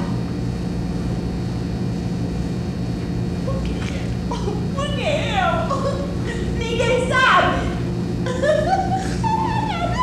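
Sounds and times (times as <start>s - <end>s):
buzzy electrical hum: 0.0s - 10.0s.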